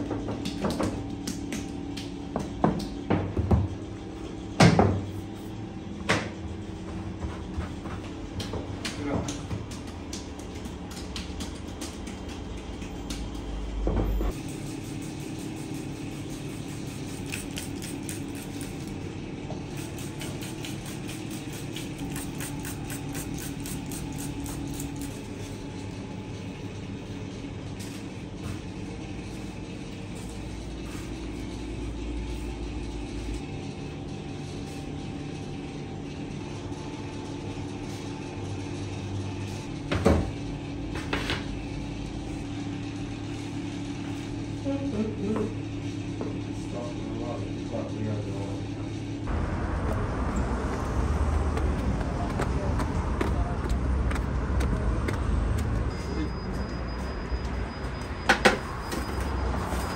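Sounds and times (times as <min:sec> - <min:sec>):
machine hum: 0:00.0 - 0:59.9.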